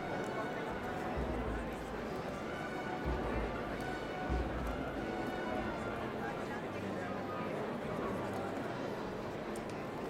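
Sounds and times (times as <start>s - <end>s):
crowd murmur: 0.0s - 10.0s
faint distant music: 0.0s - 10.0s.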